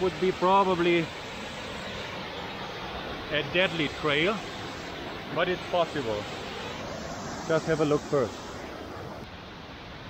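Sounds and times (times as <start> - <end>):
river rushing: 0.0 - 10.0
waterfall rushing: 3.3 - 10.0.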